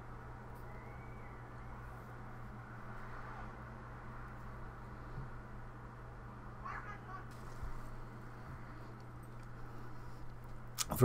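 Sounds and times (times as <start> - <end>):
steady low hum: 0.0 - 11.0
distant voice: 6.5 - 7.4.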